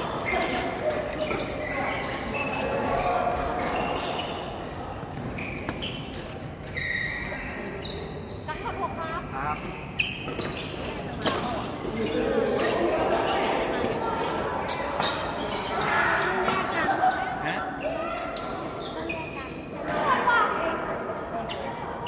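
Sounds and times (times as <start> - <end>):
shoes squeaking on court floor: 0.0 - 13.4, 14.2 - 19.7
voices in echoing hall: 0.0 - 22.0
rackets hitting shuttlecock: 10.1 - 14.0.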